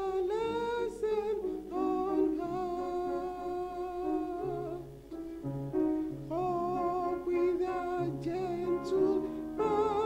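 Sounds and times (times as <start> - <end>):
woman singing a hymn: 6.4 - 10.0.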